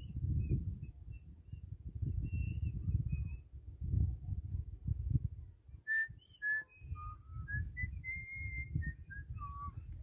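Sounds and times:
whistled tune: 5.9s - 10.0s.

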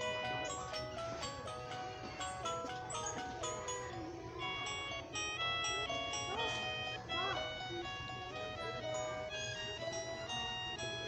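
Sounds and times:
toy record player melody: 0.0s - 11.0s.

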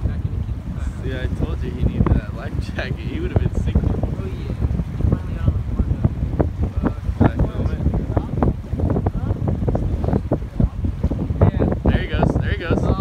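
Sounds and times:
strong wind buffeting microphone: 0.0s - 13.0s.

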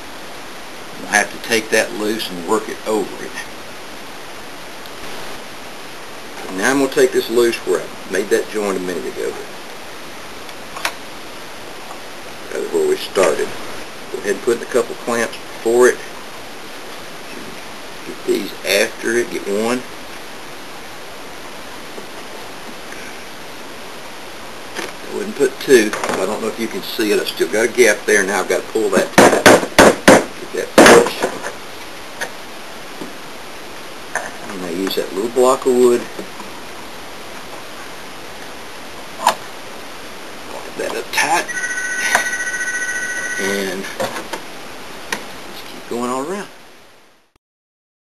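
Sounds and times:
steady hiss: 0.0s - 41.5s, 43.4s - 47.3s.

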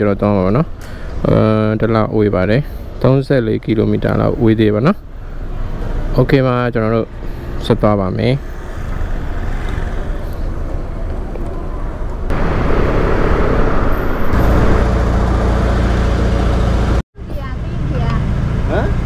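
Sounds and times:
street traffic rumble: 0.0s - 19.0s
motor scooter: 8.4s - 11.6s.

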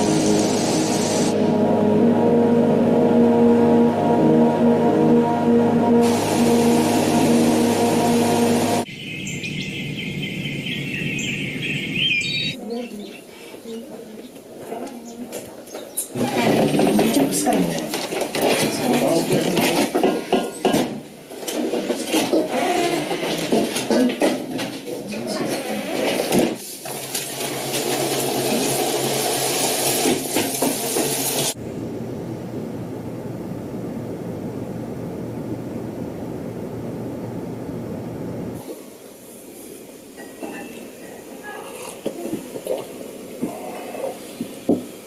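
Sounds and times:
steady rushing hiss: 0.0s - 1.5s, 6.0s - 8.9s, 38.0s - 45.0s
sustained film music: 0.0s - 8.9s
birds calling and chirping: 8.8s - 14.4s
food sizzling in a pot: 27.9s - 31.6s.

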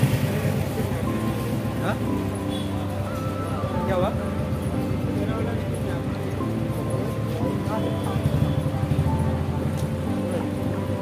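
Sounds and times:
crowd chatter: 0.0s - 11.0s
music: 0.0s - 11.0s
vehicle noise: 0.0s - 11.0s.

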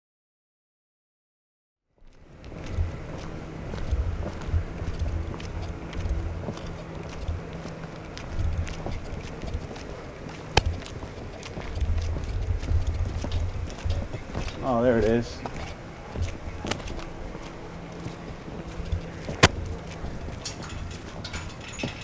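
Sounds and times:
footsteps on pavement: 2.0s - 22.0s
steady low hum: 2.0s - 22.0s.

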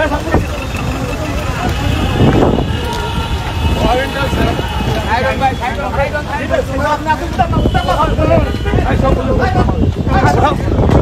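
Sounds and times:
crowd raised voices: 0.0s - 11.0s
traffic rumble: 0.0s - 11.0s.

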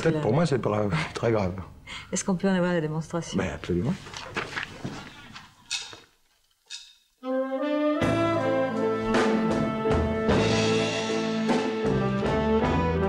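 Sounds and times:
brass chord: 7.2s - 13.0s
band with drums playing: 8.0s - 13.0s.

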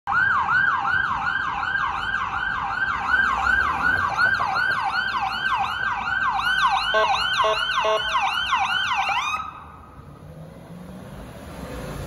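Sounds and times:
ambulance siren yelping: 0.1s - 10.1s.

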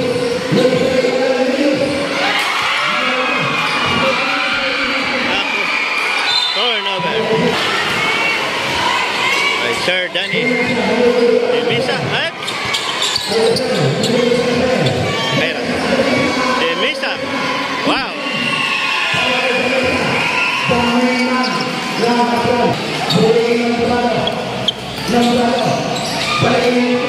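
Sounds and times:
voices of spectators and players: 0.0s - 27.0s.

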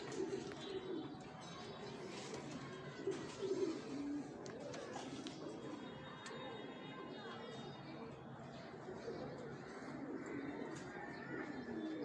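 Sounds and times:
pigeons cooing: 0.0s - 1.2s, 2.0s - 5.8s, 8.8s - 12.0s.

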